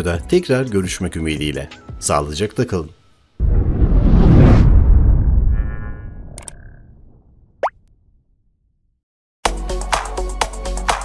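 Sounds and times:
low rumble: 0:03.4 - 0:07.6.

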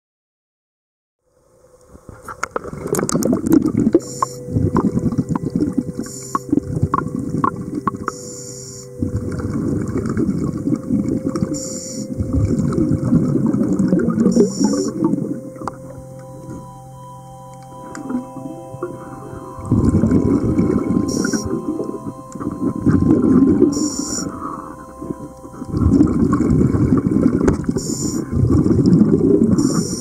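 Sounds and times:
bubbling exhalations: 0:02.6 - 0:08.2, 0:09.0 - 0:15.9, 0:17.9 - 0:30.0
steady low hum: 0:03.2 - 0:30.0
hissing regulator inhalations: 0:04.0 - 0:04.8, 0:06.0 - 0:06.8, 0:08.0 - 0:09.2, 0:11.4 - 0:12.3, 0:14.2 - 0:15.2, 0:19.0 - 0:26.1, 0:27.8 - 0:28.4.

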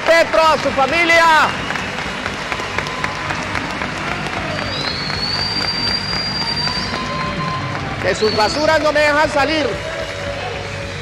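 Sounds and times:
audience applauding: 0:00.0 - 0:11.0
long high whistle: 0:04.6 - 0:08.6.

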